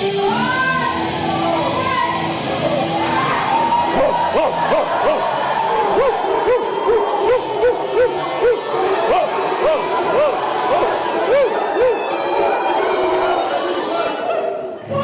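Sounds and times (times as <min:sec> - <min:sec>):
music: 0:00.0 - 0:15.0
people imitating dog barks: 0:03.9 - 0:12.5.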